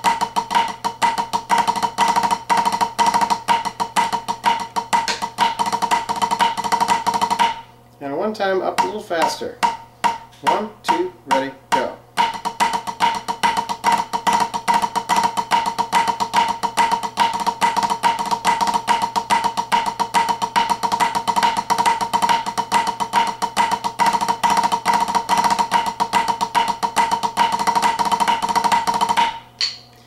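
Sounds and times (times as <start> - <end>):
sticks drumming on practice pad: 0.0 - 7.7, 8.4 - 29.9.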